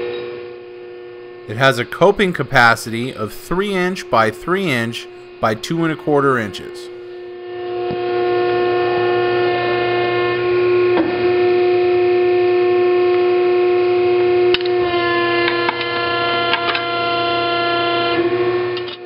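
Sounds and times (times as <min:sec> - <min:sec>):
hydraulic machine whine: 0:00.0 - 0:19.0
low hum: 0:00.1 - 0:13.9.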